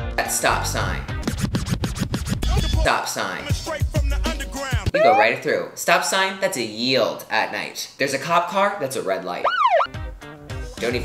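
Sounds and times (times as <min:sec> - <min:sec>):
hip hop beat: 0:03.4 - 0:05.4
record scratching: 0:04.9 - 0:05.4, 0:09.5 - 0:09.9.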